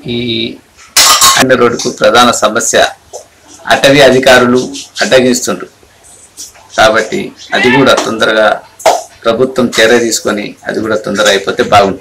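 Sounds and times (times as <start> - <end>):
man speaking into microphone: 0.0 - 0.7, 1.4 - 5.8, 6.5 - 12.0.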